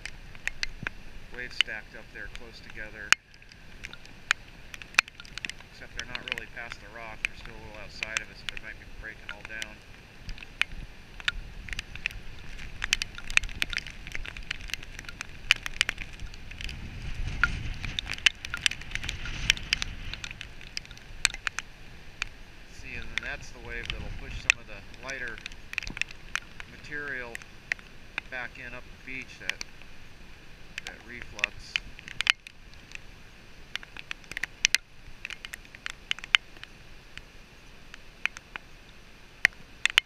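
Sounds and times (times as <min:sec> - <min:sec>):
heavy surf: 0:00.0 - 0:40.0
rain drops ticking on camera: 0:00.0 - 0:40.0
wind: 0:00.0 - 0:40.0.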